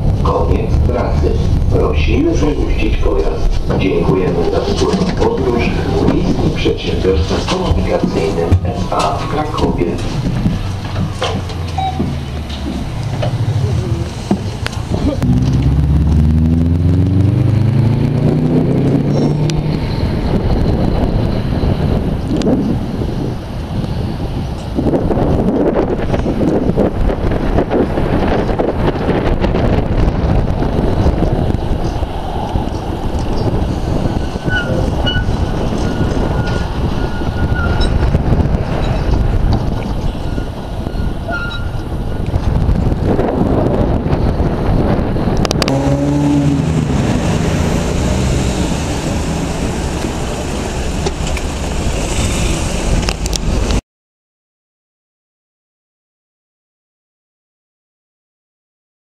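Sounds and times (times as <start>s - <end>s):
tram motors whining: 0.0s - 24.9s, 26.0s - 53.8s
tram rumbling along track: 0.0s - 53.8s
faint high squeals: 40.2s - 42.2s.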